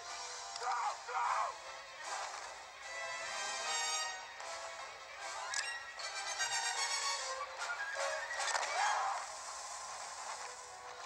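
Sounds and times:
airy film soundtrack music: 0.0 - 11.0.

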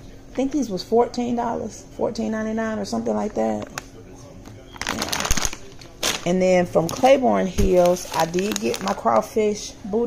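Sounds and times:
plastic packaging crinkling: 4.8 - 9.3.

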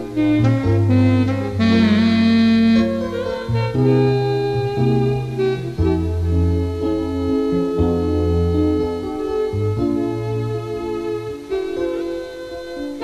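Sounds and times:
instrumental film score music: 0.0 - 13.0.

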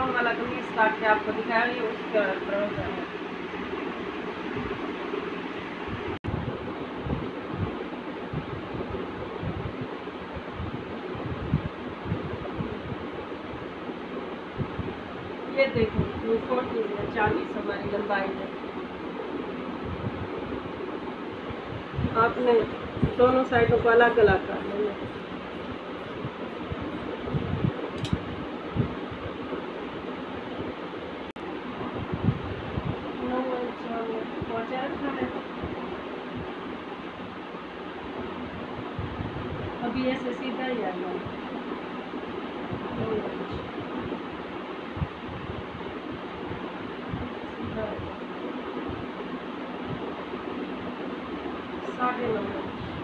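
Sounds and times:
steady background hiss: 0.0 - 53.0
steady rushing noise: 0.0 - 53.0
sharp click: 28.0 - 28.2.

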